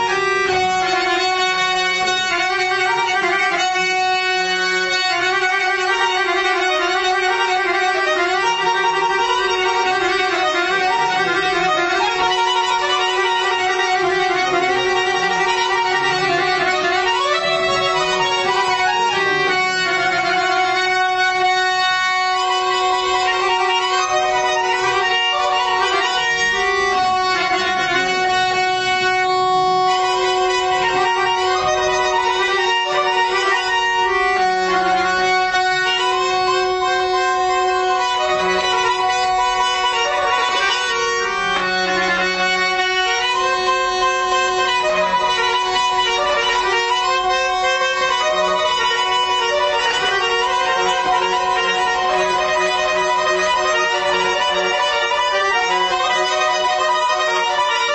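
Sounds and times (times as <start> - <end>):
accordion: 0.0 - 57.9
bowed-string melody: 0.0 - 57.9.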